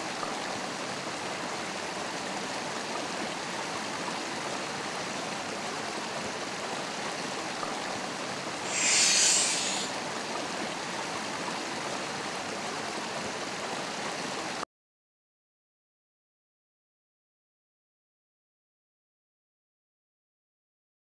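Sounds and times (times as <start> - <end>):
stream running over rocks: 0.0 - 14.6
loud hissing swish: 8.6 - 10.0.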